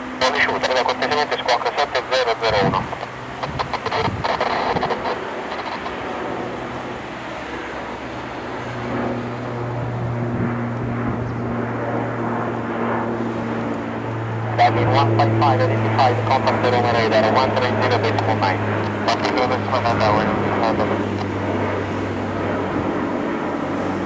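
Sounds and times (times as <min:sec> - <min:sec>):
jet engines idling: 0:00.0 - 0:24.0.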